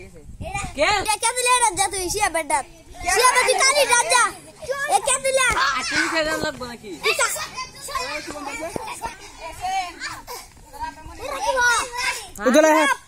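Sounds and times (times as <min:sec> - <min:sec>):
children calling and chattering: 0:00.0 - 0:13.0.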